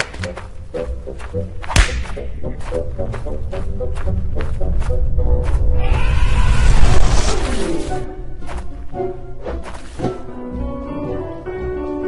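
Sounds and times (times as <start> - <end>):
staccato music: 0.0 - 5.6
cartoon whip crack with thud: 1.7 - 2.2.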